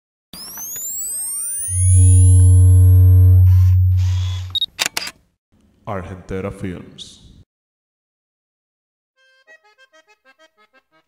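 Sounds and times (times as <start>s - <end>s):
sweeping synth pitch glides: 0.8s - 4.5s
deep hum under held chord: 1.7s - 4.5s
sharp shutter-like clicks: 3.5s - 5.2s.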